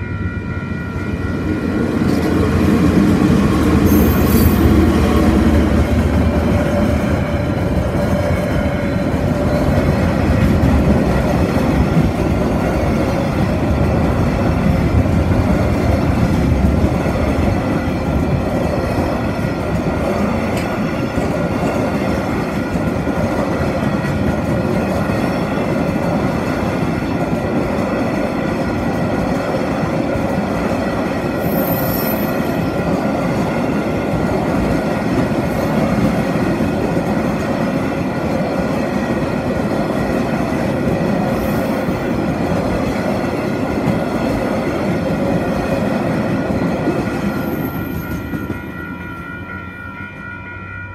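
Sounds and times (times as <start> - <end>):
train wheels on rails: 0.0 - 50.0.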